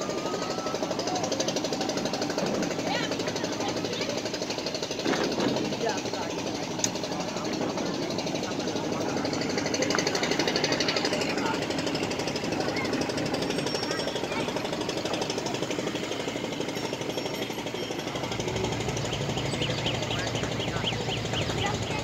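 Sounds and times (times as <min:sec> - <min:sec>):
boat diesel engine running: 0:00.0 - 0:22.0.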